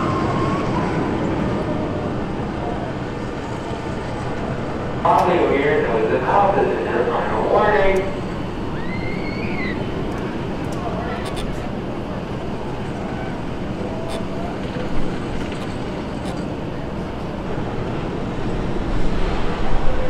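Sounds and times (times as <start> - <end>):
roller coaster wheels rumbling on rails: 0.0 - 20.0.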